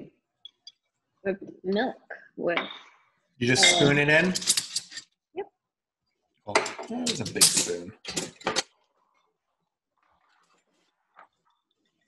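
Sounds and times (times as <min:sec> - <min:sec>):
person asking a question: 0:03.4 - 0:04.4, 0:06.8 - 0:07.8
metal spoon clinking glass: 0:03.6 - 0:05.0, 0:06.6 - 0:08.6.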